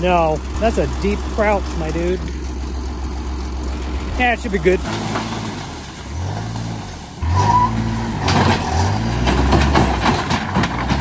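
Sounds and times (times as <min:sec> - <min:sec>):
utility vehicle engine revving: 0:00.0 - 0:11.0
sheet metal scraping over ground: 0:04.5 - 0:11.0.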